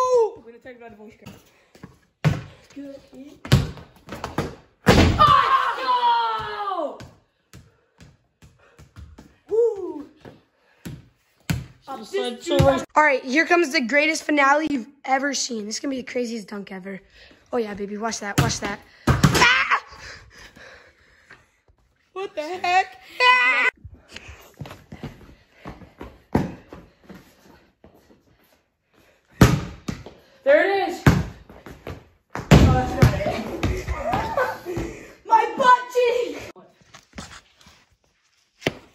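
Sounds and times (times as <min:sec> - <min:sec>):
basketball bouncing on concrete: 0:01.2 - 0:02.8, 0:03.4 - 0:04.7, 0:06.4 - 0:11.8, 0:12.4 - 0:12.9, 0:18.2 - 0:19.4, 0:29.4 - 0:30.2, 0:31.0 - 0:34.9.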